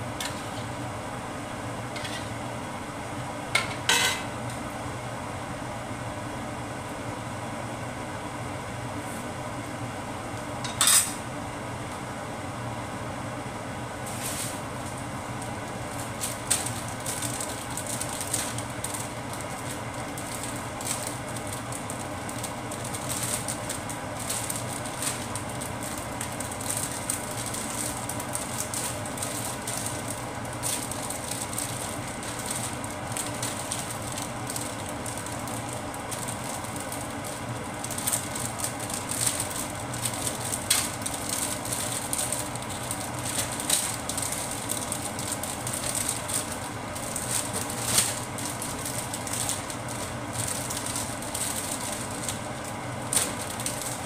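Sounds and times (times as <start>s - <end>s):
liquid crackling in a wok: 0.0s - 0.8s, 13.9s - 54.0s
range hood fan whooshing: 0.0s - 54.0s.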